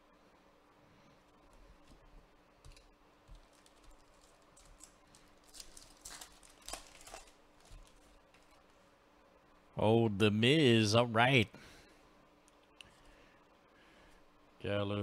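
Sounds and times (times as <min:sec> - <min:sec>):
faint steady hum: 0:00.0 - 0:15.0
foil wrapper crinkling and tearing: 0:03.4 - 0:08.6.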